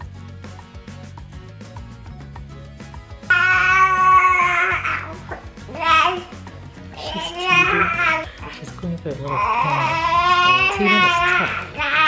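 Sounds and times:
background music: 0:00.0 - 0:12.0
baby whining cry: 0:03.3 - 0:08.6, 0:09.3 - 0:12.0.

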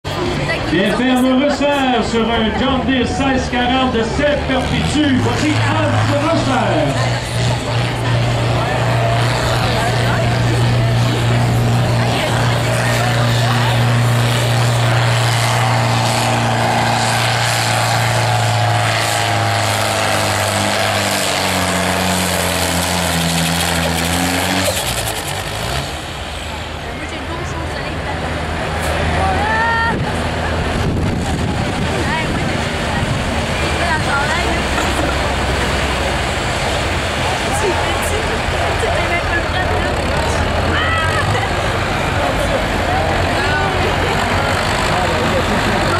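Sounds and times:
rough engine rumble: 0:00.0 - 0:45.9
tractor engine at full throttle: 0:00.0 - 0:45.9.

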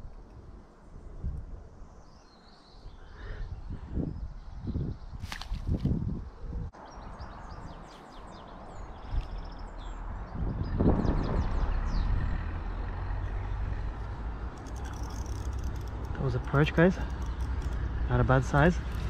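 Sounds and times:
songbird chirping and trilling: 0:00.0 - 0:05.4, 0:06.3 - 0:19.0
low outdoor rumble: 0:08.3 - 0:19.0
faint clicks: 0:14.5 - 0:17.9.

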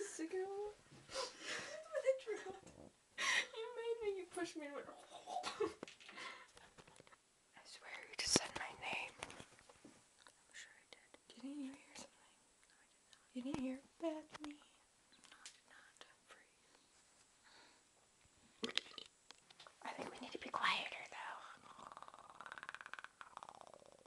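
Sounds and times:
girl whispering: 0:07.6 - 0:09.2, 0:10.5 - 0:16.6, 0:19.8 - 0:21.8.

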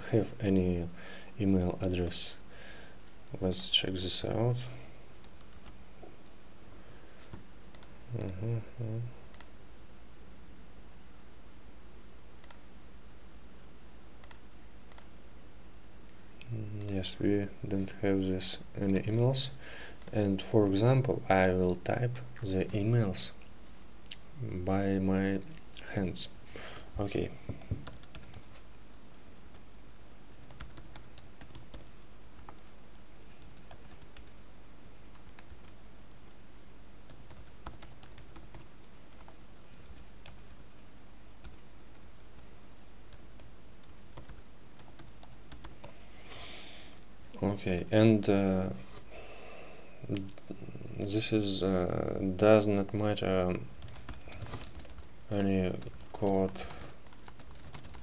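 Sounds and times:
low electrical hum: 0:00.0 - 0:58.0
typing on keyboard: 0:05.2 - 0:05.8, 0:07.7 - 0:08.5, 0:09.3 - 0:09.5, 0:27.6 - 0:28.6, 0:30.3 - 0:32.7, 0:33.4 - 0:34.4, 0:35.1 - 0:36.4, 0:37.1 - 0:40.6, 0:41.4 - 0:45.9, 0:53.8 - 0:58.0
computer mouse clicking: 0:07.7 - 0:08.5, 0:09.3 - 0:09.5, 0:12.2 - 0:12.6, 0:14.2 - 0:15.1.

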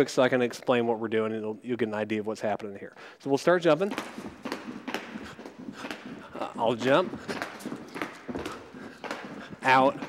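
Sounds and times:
jump ropes slapping floor: 0:03.6 - 0:10.0.

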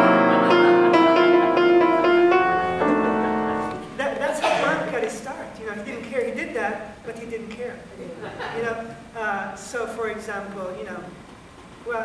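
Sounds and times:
piano chords: 0:00.0 - 0:05.6.

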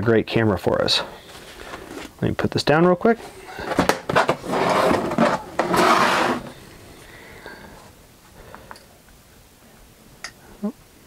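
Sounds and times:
scraping and rustling: 0:03.2 - 0:06.6.

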